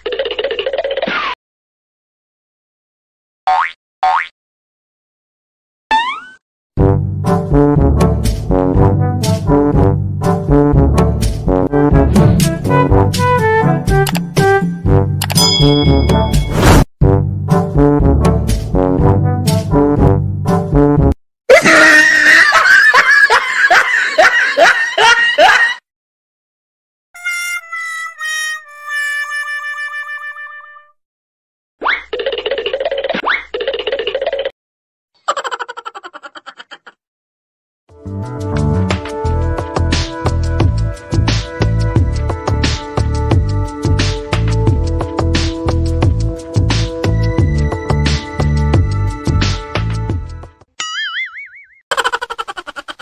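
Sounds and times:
background music with steady beat: 10.2s - 15.2s
person laughing in bursts: 21.5s - 25.8s, 35.2s - 37.0s, 51.9s - 53.0s.

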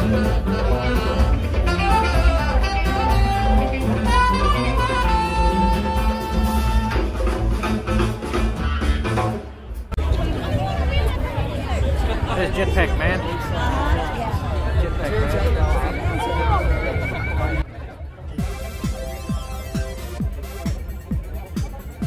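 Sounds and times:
saxophone long notes: 0.0s - 7.6s
drum kit: 0.0s - 10.0s, 18.4s - 22.0s
crowd chatter: 0.0s - 22.0s.

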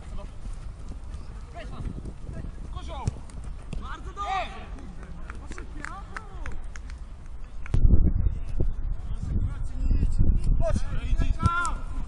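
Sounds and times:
running feet on turf: 0.0s - 6.6s.

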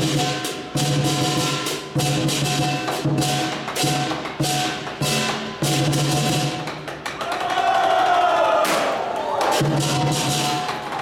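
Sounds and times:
lion dance drumming: 0.0s - 11.0s
group of people shouting: 7.2s - 11.0s.

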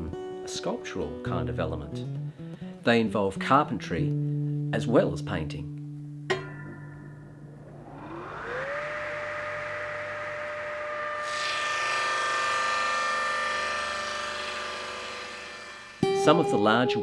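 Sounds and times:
table saw motor whine: 6.7s - 16.8s
saw blade cutting plywood: 8.5s - 16.0s.

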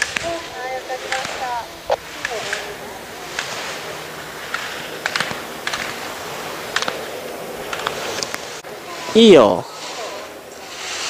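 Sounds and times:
slalom poles clacking: 0.0s - 8.6s
steady hiss: 0.0s - 11.0s.

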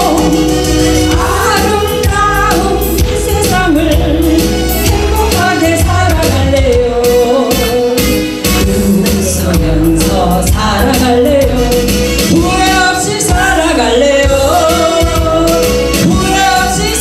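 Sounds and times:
music with steady beat: 0.0s - 17.0s
woman singing into a microphone: 0.0s - 17.0s.

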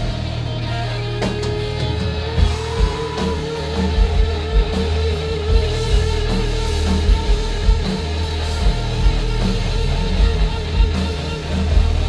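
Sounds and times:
guitar holding long note: 0.0s - 12.0s
live rock band: 0.0s - 12.0s.

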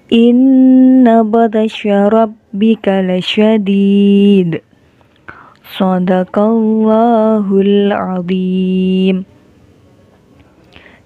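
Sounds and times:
woman chanting melodically: 0.0s - 4.7s, 5.3s - 9.3s.

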